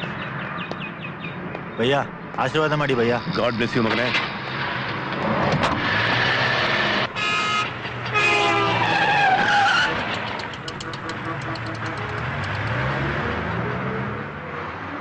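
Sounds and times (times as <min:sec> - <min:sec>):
vehicle engines and road noise: 0:00.0 - 0:15.0.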